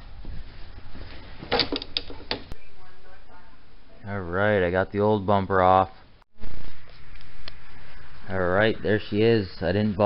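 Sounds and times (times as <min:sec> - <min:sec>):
metal clunks and rattles: 0:01.4 - 0:02.6.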